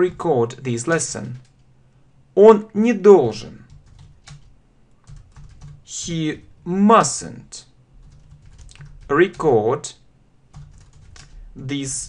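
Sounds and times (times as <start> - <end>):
computer keyboard typing: 0.0 - 1.7, 3.6 - 6.1, 8.0 - 9.6, 10.5 - 11.4.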